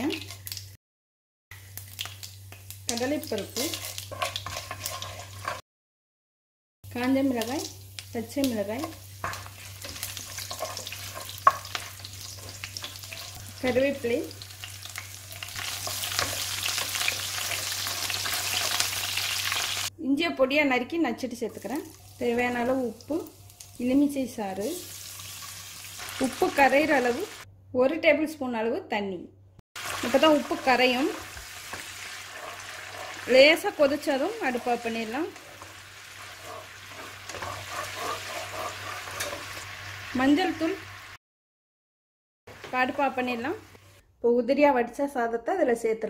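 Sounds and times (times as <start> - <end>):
spices sizzling in hot oil: 1.5 - 5.6, 6.9 - 19.9, 21.2 - 27.5, 29.8 - 41.2
wooden spatula stirring: 3.6 - 5.6, 8.8 - 13.8, 29.8 - 39.6.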